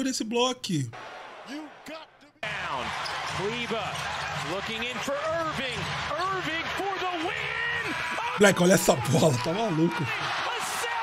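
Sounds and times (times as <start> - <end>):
crowd noise: 0.9 - 11.0.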